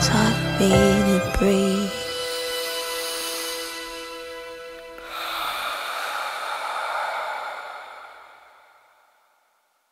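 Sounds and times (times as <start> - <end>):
long breathy exhale: 5.0 - 9.8.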